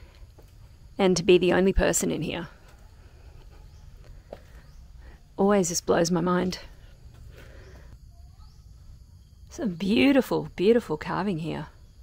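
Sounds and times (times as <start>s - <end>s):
faint bird chirps: 2.6s - 5.4s, 7.3s - 10.0s.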